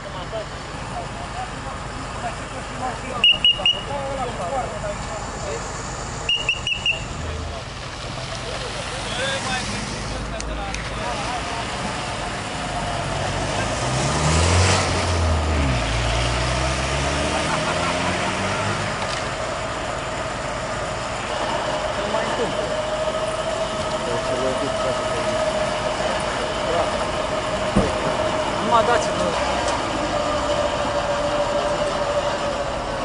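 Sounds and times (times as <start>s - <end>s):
voices: 0.0s - 14.1s, 17.2s - 33.0s
traffic noise: 0.0s - 33.0s
vehicle driving past: 11.0s - 33.0s.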